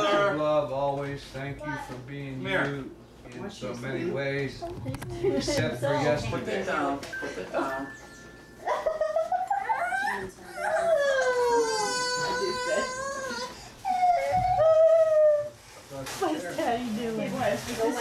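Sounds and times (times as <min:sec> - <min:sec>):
baby crying: 0:09.4 - 0:15.6.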